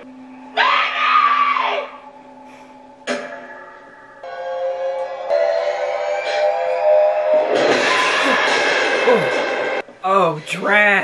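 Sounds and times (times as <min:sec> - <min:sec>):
low steady soundtrack drone: 0:00.0 - 0:09.9
woman screaming: 0:00.6 - 0:02.0.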